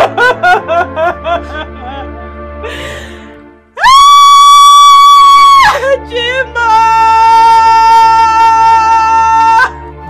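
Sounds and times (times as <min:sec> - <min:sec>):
woman screaming: 0:03.8 - 0:09.8.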